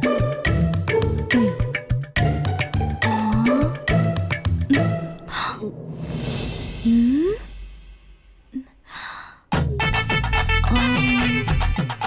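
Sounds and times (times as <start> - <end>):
questioning hum vocal: 3.0 - 3.9.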